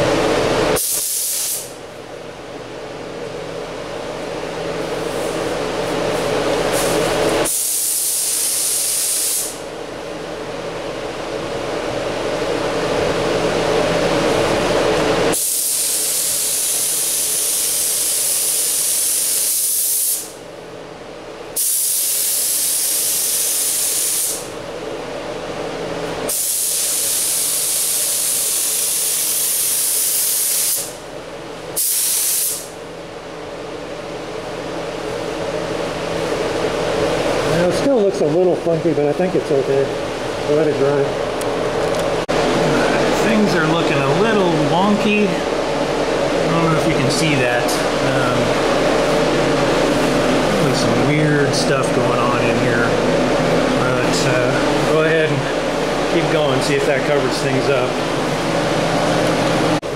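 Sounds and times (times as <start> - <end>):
steady hum: 0.0 - 59.9
paint spray gun hissing: 0.8 - 1.7, 6.8 - 9.6, 15.4 - 20.3, 21.6 - 24.4, 26.3 - 31.0, 31.8 - 32.7.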